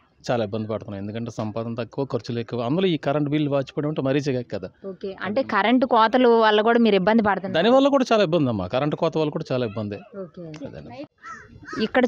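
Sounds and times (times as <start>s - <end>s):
bird calling: 11.1s - 12.0s.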